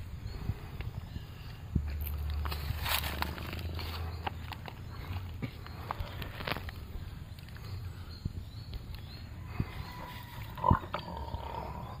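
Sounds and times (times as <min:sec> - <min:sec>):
wild boar grunting: 0:10.5 - 0:12.0.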